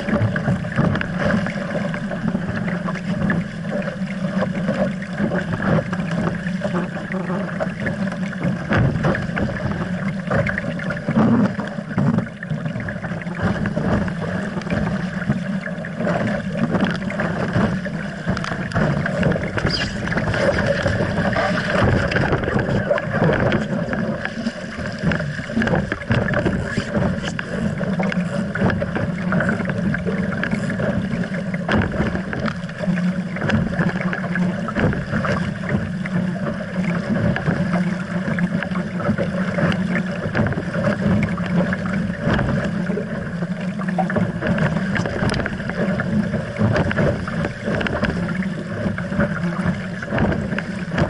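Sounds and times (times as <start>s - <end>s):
water rushing past hull: 0.0s - 51.0s
wind on microphone: 16.2s - 36.1s.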